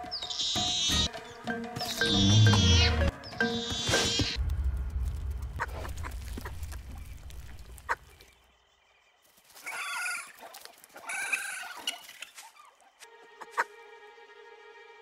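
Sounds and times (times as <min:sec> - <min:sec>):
cartoon dinosaur calls: 0:02.0 - 0:04.4
low rumble: 0:04.4 - 0:07.8.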